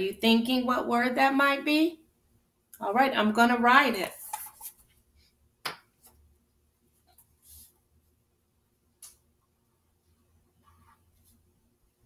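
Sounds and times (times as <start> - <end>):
woman speaking: 0.0 - 2.0, 2.8 - 4.3.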